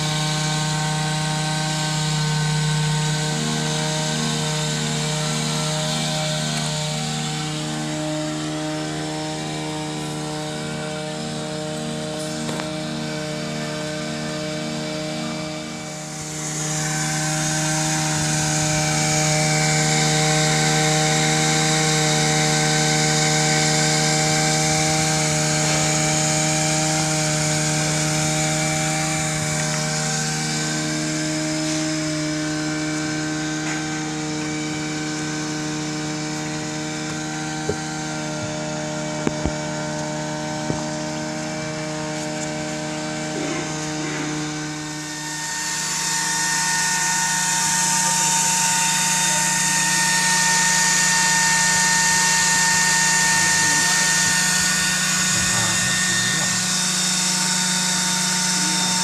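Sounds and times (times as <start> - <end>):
motor humming: 0.0 - 59.0.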